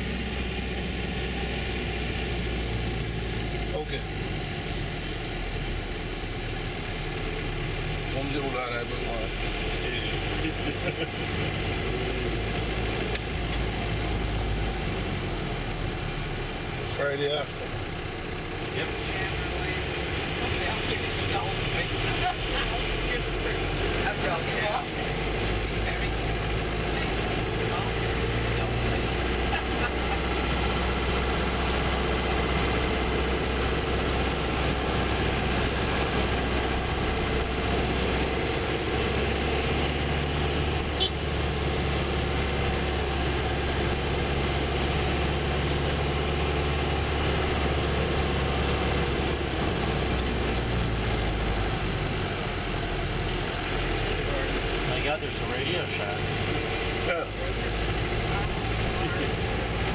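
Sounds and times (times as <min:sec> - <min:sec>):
bus engine humming: 0:00.0 - 0:59.9.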